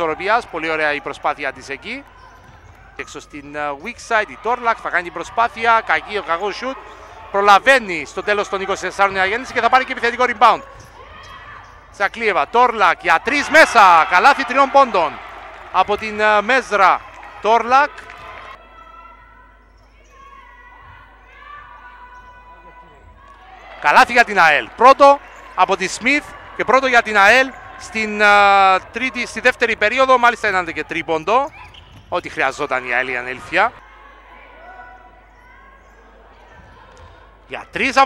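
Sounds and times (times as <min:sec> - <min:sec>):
basketball bouncing on court: 0:02.0 - 0:04.0, 0:30.5 - 0:32.5
basketball bouncing on floor: 0:31.5 - 0:32.3.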